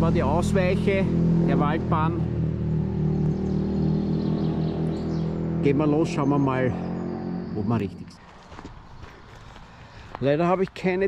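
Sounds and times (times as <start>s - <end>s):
footsteps on gravel: 8.2s - 11.0s.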